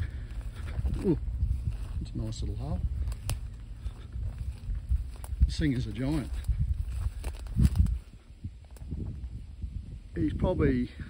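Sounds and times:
stalks crackling: 0.0 - 9.0
footsteps through dry grass: 0.0 - 10.2
low microphone rumble: 0.0 - 11.0.

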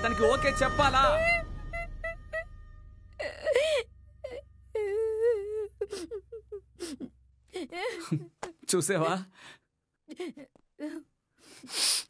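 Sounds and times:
person wailing and whimpering: 3.2 - 8.3.

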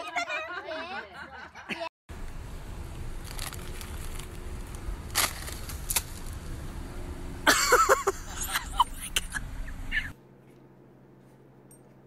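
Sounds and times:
car engine idling: 2.1 - 10.1.

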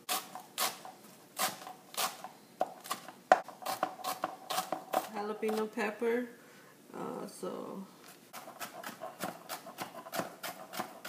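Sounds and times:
knife chopping on plastic board: 8.4 - 11.0.

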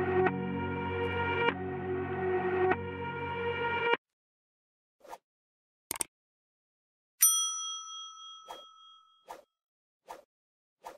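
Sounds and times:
bright bell-like ding: 7.2 - 9.2.

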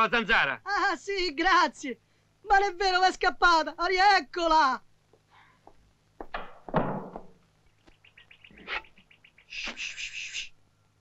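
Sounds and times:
bird chirping: 7.6 - 10.5
brief rustling hiss: 9.5 - 10.5.

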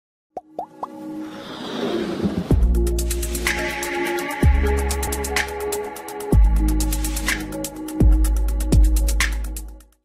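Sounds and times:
rising whoosh: 1.1 - 3.4
electronic music: 2.5 - 9.8.

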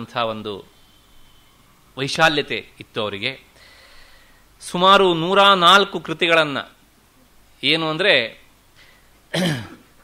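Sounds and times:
man lecturing: 0.0 - 0.7, 2.0 - 3.5, 4.6 - 6.8, 7.6 - 8.4
man clearing his throat: 9.3 - 9.9.

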